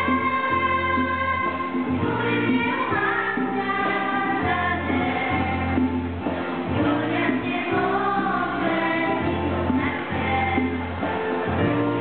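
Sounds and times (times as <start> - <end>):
girls choir singing: 0.0 - 11.7.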